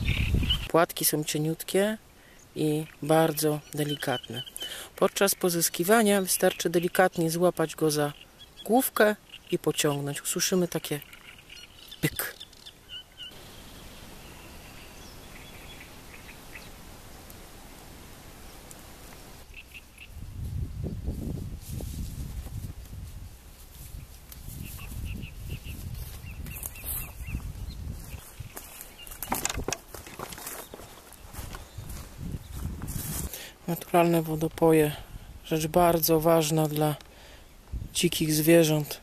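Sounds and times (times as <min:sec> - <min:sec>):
wind buffeting microphone: 0:00.0 - 0:00.7, 0:20.0 - 0:30.0, 0:30.7 - 0:33.3, 0:37.6 - 0:38.0
birds chirping: 0:00.0 - 0:21.0, 0:24.0 - 0:39.0
steady hiss: 0:13.3 - 0:19.5.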